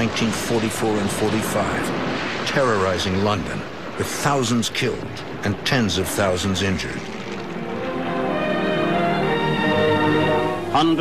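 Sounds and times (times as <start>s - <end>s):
droning chord background music: 5.2s - 11.0s.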